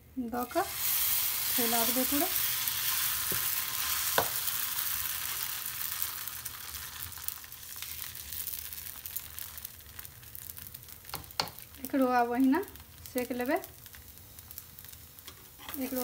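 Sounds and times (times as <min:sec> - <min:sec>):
batter sizzling on a hot griddle: 0:00.2 - 0:16.0.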